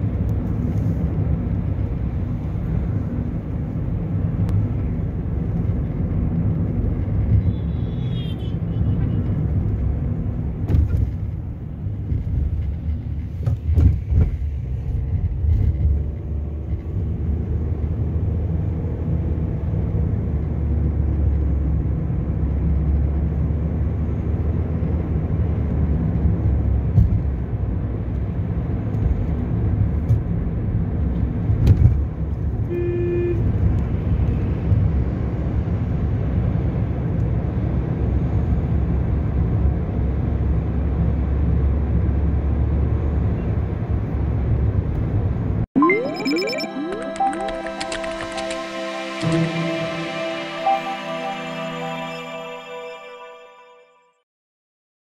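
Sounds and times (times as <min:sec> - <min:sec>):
car engine and road noise: 0:00.0 - 0:45.7.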